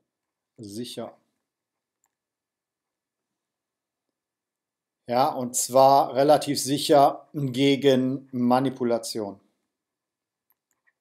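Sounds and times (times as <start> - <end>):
man speaking: 0.6 - 1.3, 5.0 - 9.6.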